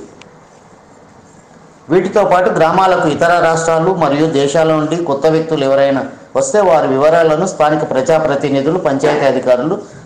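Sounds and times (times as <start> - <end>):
man speaking: 1.9 - 9.9.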